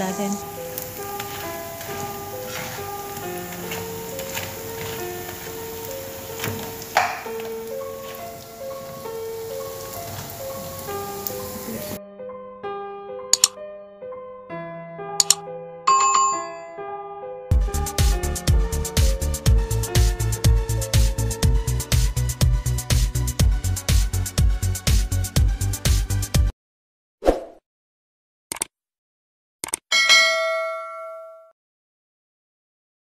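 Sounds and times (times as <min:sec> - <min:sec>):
bell-like notification chime: 0:15.9 - 0:17.0, 0:30.0 - 0:31.5.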